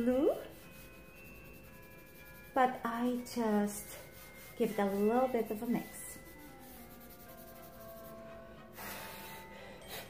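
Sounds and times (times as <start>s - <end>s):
fingertips rubbing pastel on paper: 0.0s - 9.4s
faint background music: 0.0s - 10.0s.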